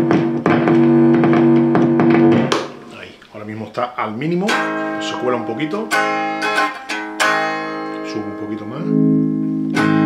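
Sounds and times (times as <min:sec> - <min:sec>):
electric guitar chord ringing: 0:04.4 - 0:10.0.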